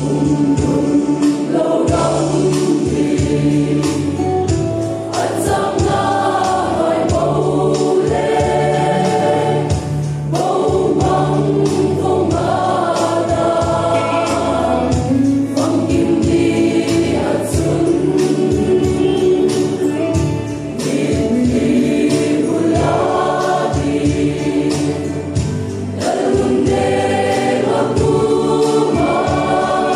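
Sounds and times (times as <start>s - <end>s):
choir singing a hymn: 0.0s - 29.9s
percussion hits: 0.0s - 29.9s.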